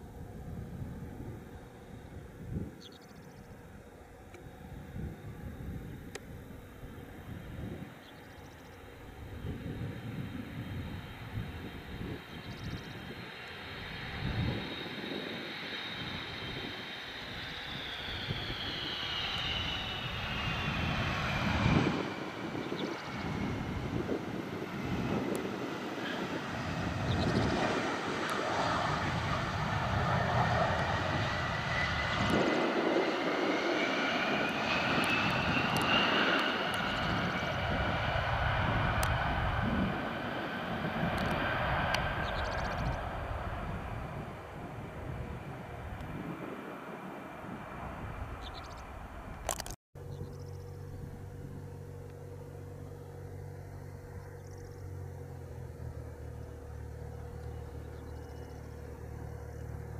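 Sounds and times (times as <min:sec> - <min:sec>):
jet engines whining: 0:00.0 - 0:59.9
low jet rumble: 0:00.0 - 0:59.9.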